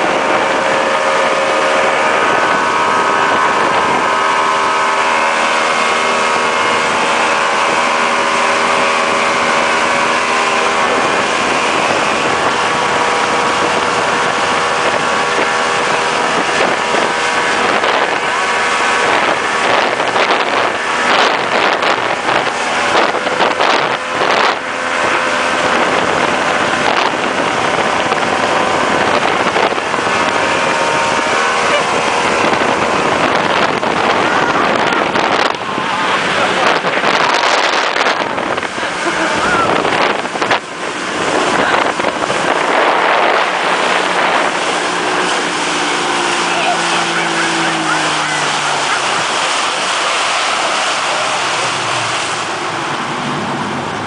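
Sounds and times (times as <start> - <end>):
churning boat wake: 0.0 - 54.0
outboard motor running: 0.0 - 54.0
rushing wind: 0.0 - 54.0
wind buffeting microphone: 0.0 - 54.0.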